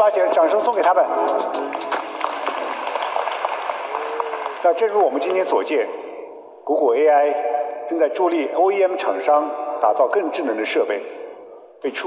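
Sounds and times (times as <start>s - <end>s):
audience applauding: 1.5s - 5.7s.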